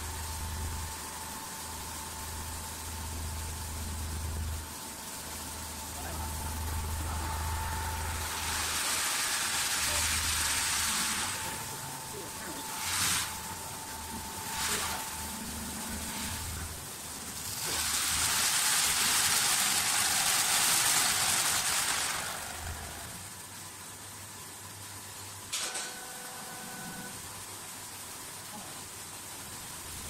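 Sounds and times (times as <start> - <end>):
lathe cutter shaving wood: 6.0 - 23.2.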